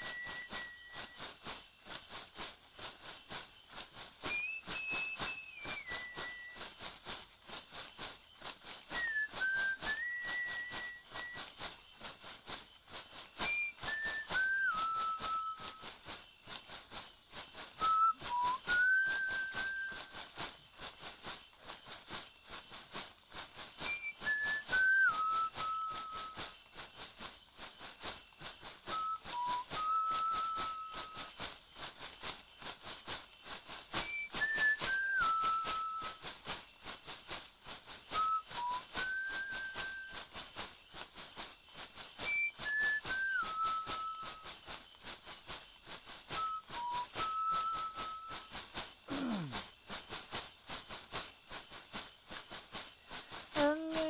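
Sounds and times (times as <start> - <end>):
person whistling slow melody: 0.0 - 1.2, 4.2 - 6.8, 8.9 - 11.6, 13.4 - 15.9, 17.7 - 20.4, 23.8 - 26.6, 28.8 - 31.4, 34.0 - 36.3, 38.1 - 40.3, 42.2 - 44.6, 46.3 - 48.5, 49.1 - 49.5
steady high hiss: 0.0 - 54.0.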